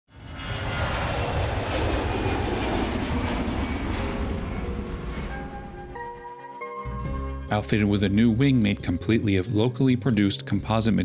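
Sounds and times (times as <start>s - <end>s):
jet engine rumble with hiss: 0.2s - 6.0s.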